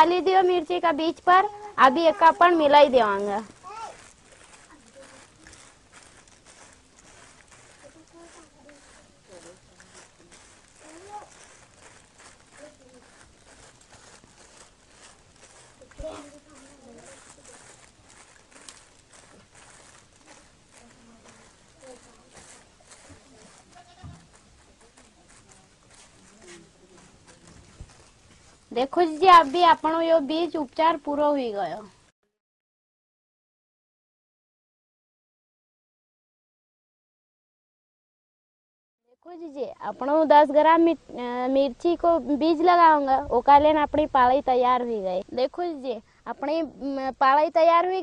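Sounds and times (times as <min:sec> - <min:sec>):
plastic rustling and crinkling: 0:00.0 - 0:32.1.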